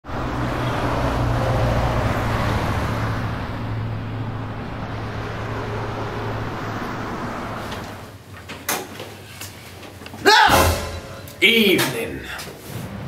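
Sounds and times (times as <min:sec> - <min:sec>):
road traffic with engine hum: 0:00.0 - 0:08.3.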